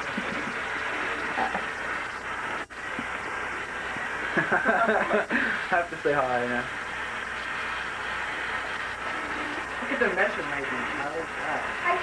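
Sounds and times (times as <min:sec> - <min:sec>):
faucet water pouring into basin: 0:00.0 - 0:12.0.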